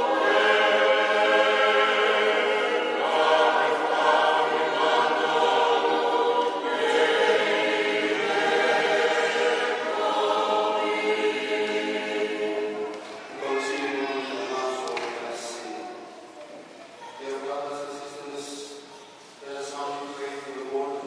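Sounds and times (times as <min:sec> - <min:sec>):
church choir singing: 0:00.0 - 0:16.1, 0:19.4 - 0:21.0.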